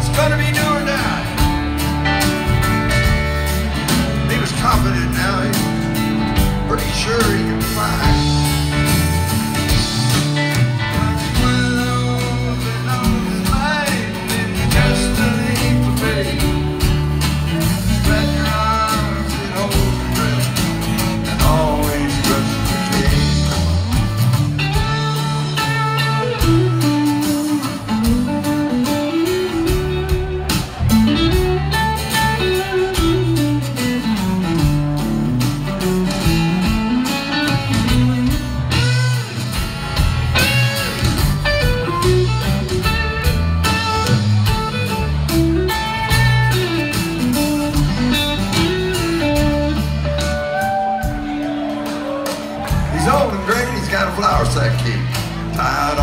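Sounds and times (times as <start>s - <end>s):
bass line: 0.0s - 56.0s
drums: 0.0s - 56.0s
guitar lead: 0.0s - 56.0s.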